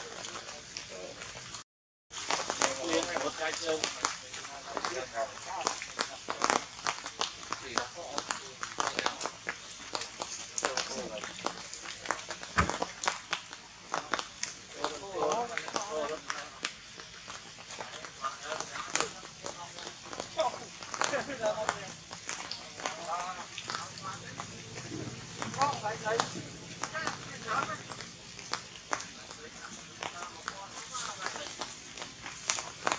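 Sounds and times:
sharp clicks and crackles: 0:02.2 - 0:32.9.

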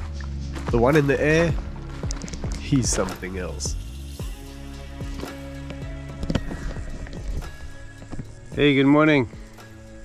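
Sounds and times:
music of sustained held notes: 0:00.0 - 0:10.0.

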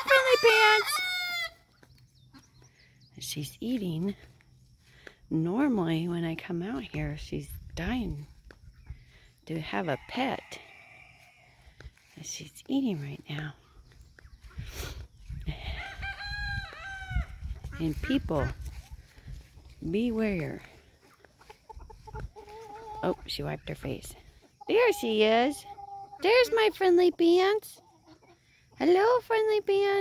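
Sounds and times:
rooster crowing: 0:00.0 - 0:01.6
hen calling: 0:00.0 - 0:03.0.

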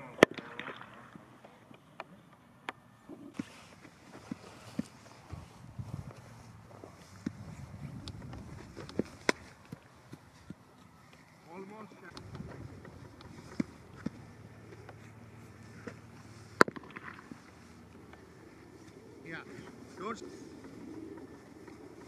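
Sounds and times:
wind buffeting microphone: 0:05.2 - 0:10.5, 0:12.1 - 0:14.4
cricket bat striking ball: 0:16.6 - 0:17.3.

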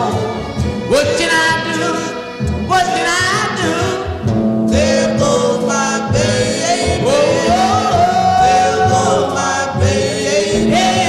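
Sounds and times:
rhythm and blues song: 0:00.0 - 0:11.0.

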